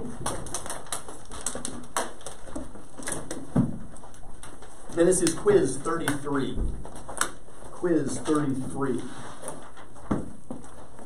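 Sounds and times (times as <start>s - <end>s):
plastic water bottle crackling: 0.0s - 11.0s.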